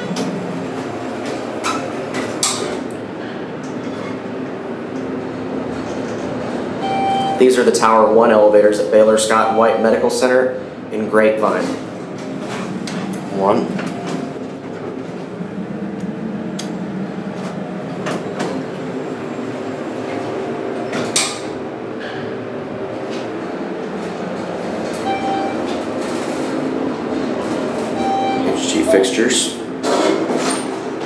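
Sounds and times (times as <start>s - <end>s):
elevator rumble and hiss: 7.4s - 30.0s.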